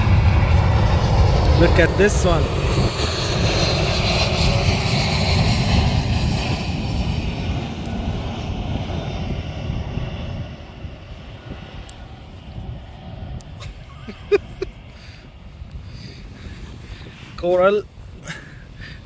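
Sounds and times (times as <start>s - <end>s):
aircraft engine droning overhead: 0.0s - 19.0s.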